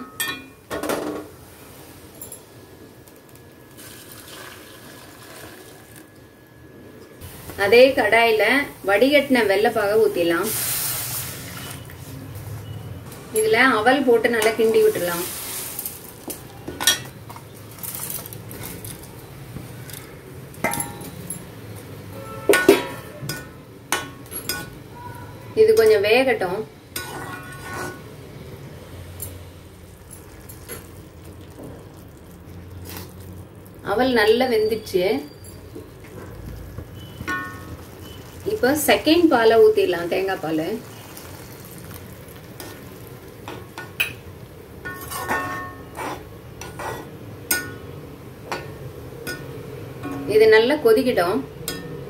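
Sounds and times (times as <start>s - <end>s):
liquid sizzling in a hot pan: 3.1s - 6.2s, 7.2s - 12.0s, 14.4s - 18.7s, 29.1s - 34.4s, 35.2s - 47.8s
milk pouring: 3.7s - 6.1s
ladle stirring in a pan: 27.0s - 28.1s, 35.4s - 39.5s, 40.1s - 47.8s.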